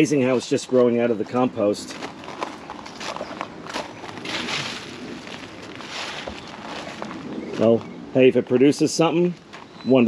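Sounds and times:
rustling and crunching leaves: 0:01.9 - 0:07.9.

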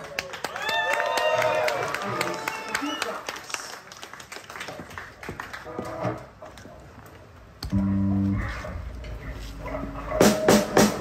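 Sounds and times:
drum kit hits: 0:10.2 - 0:11.0.

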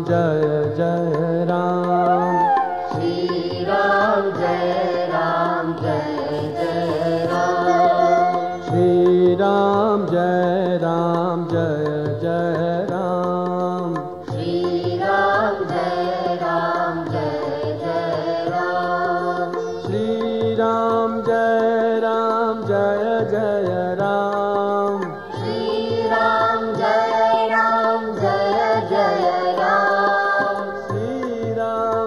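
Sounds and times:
devotional chant melody: 0:00.0 - 0:32.0.

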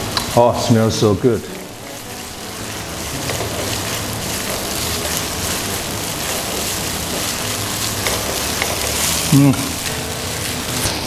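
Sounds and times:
paste sizzling in hot oil: 0:00.0 - 0:11.0.

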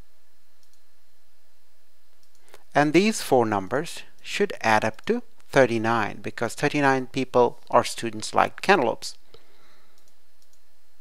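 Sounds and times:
steady low hiss: 0:00.0 - 0:11.0
faint sharp clicks: 0:00.6 - 0:00.8, 0:02.1 - 0:02.7, 0:10.0 - 0:10.6
person speaking: 0:02.5 - 0:09.3.

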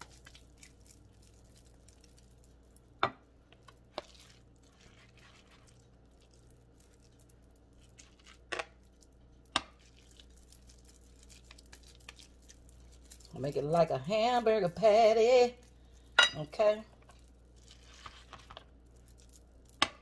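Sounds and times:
soft hand handling sounds: 0:00.0 - 0:13.5, 0:16.9 - 0:19.8.

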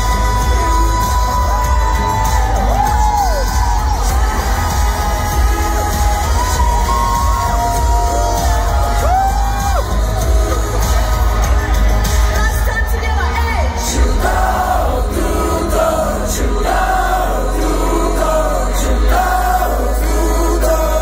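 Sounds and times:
crowd cheering and whooping: 0:00.0 - 0:12.8
live pop song over loudspeakers: 0:00.0 - 0:21.0.

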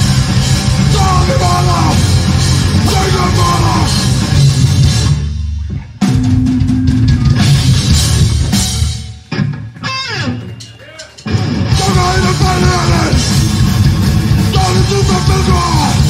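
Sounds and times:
punk rock band playing live: 0:00.0 - 0:16.0.

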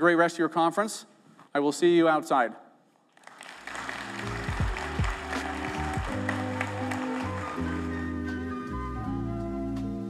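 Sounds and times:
audience applause: 0:03.2 - 0:08.4
music with steady bass line: 0:04.2 - 0:10.0.

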